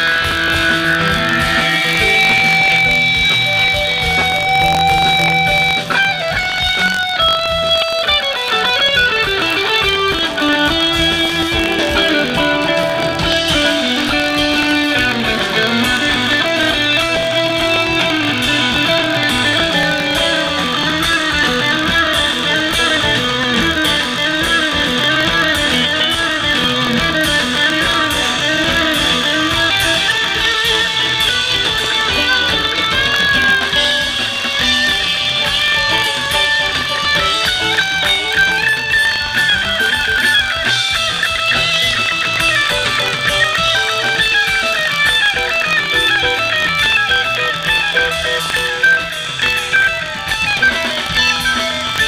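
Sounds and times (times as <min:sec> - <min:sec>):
electric guitar solo: 0:00.0 - 0:52.0
live rock band playing: 0:00.0 - 0:52.0.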